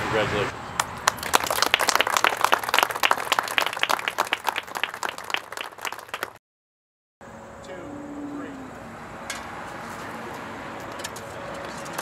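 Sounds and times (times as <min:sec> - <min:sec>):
group of people applauding: 0:00.8 - 0:06.4.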